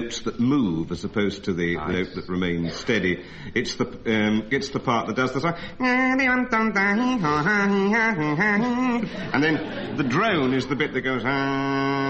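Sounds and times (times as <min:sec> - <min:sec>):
man singing bagpipe imitation: 0:01.8 - 0:09.6, 0:10.5 - 0:12.0.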